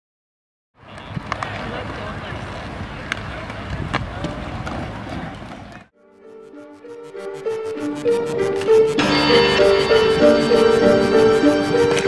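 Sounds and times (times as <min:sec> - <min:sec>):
murmur of outdoor crowd: 0:00.8 - 0:05.9.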